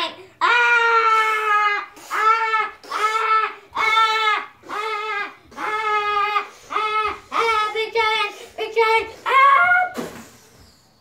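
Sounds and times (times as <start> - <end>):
child singing drawn-out aah: 0.0 - 10.4.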